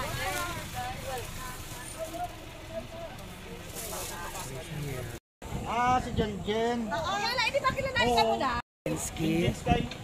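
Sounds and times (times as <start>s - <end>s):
van engine and road rumble: 0.0s - 10.0s.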